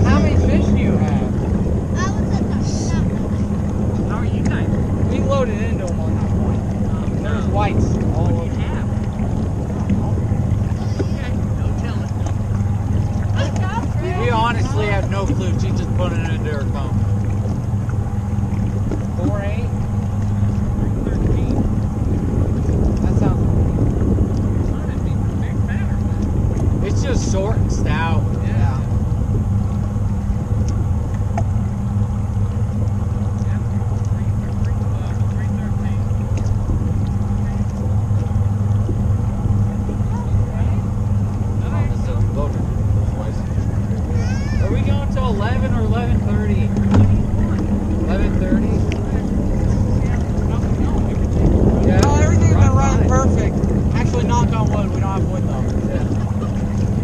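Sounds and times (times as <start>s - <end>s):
faint voices across water: 0.0s - 57.0s
outboard engine idling: 0.0s - 57.0s.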